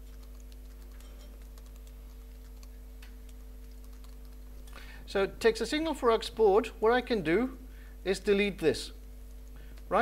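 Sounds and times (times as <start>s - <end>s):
typing on computer keyboard: 0.0s - 4.5s
low electrical hum: 0.0s - 10.0s.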